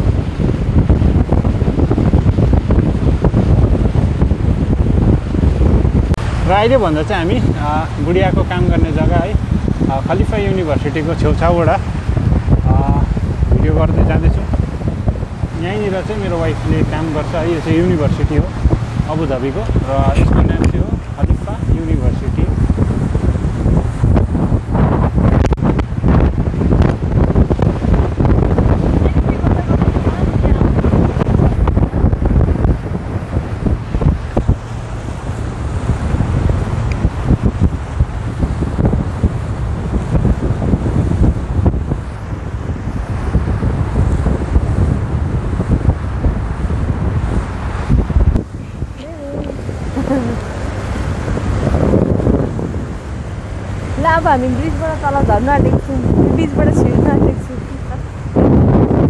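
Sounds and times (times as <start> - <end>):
boat engine: 0.0 - 59.0
water rushing along hull: 0.0 - 59.0
wind buffeting microphone: 0.0 - 59.0.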